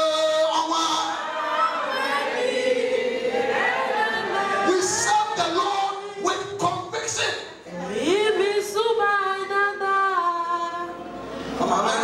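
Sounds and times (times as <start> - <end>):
voices singing together: 0.8 - 6.5.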